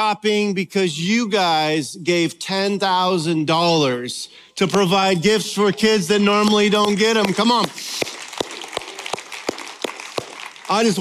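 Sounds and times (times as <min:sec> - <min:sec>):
audience applauding: 0:06.4 - 0:11.0
close hand claps: 0:06.4 - 0:11.0.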